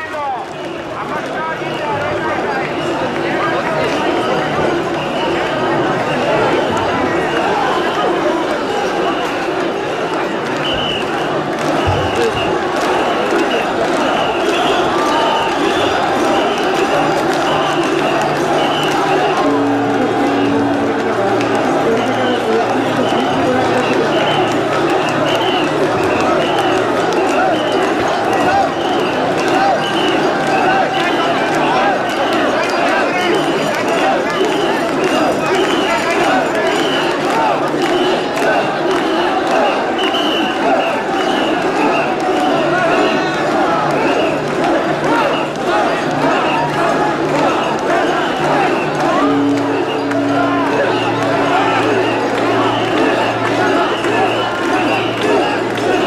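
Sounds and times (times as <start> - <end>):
crowd shouting: 0.0 - 56.0
rhythmic chant: 0.0 - 56.0.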